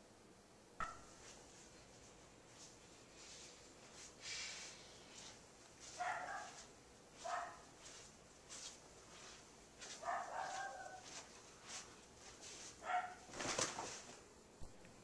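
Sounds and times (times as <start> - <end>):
dog barking faintly: 5.9 - 7.7, 9.9 - 11.2, 12.8 - 13.3.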